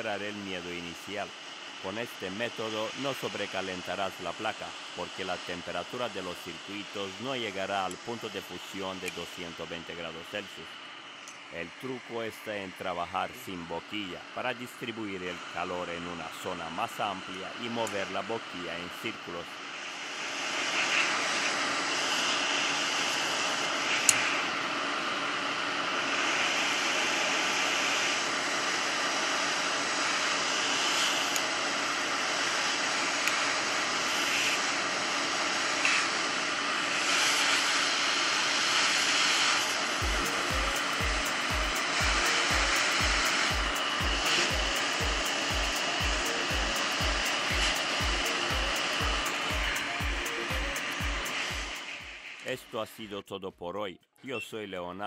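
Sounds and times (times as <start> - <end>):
hot-air station blowing air: 0.0 - 53.0.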